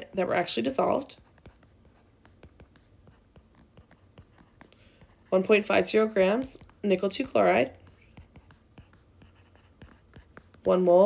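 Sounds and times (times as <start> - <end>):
stylus tapping on tablet screen: 0.5 - 11.0.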